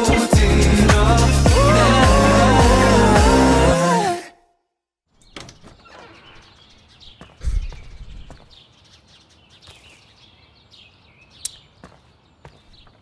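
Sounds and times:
footsteps on doorstep: 0:07.0 - 0:08.6, 0:11.8 - 0:13.0.

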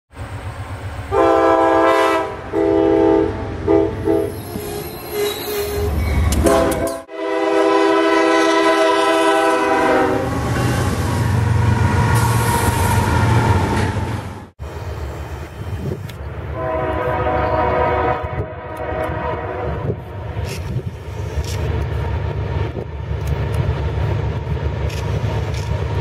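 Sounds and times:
low rumble of train: 0:00.1 - 0:26.0
locomotive air horn blasts: 0:01.1 - 0:10.7, 0:16.5 - 0:20.0.

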